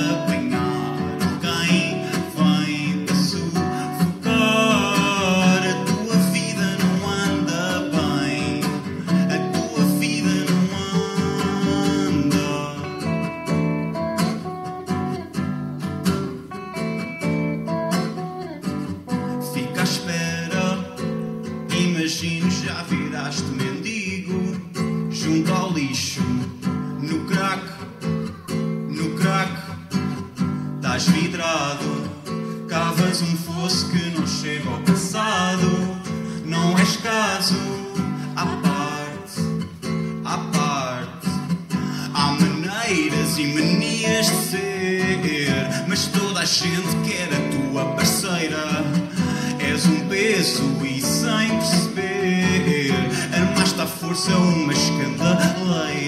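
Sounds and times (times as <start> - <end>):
acoustic guitar strummed and plucked: 0.0 - 56.0.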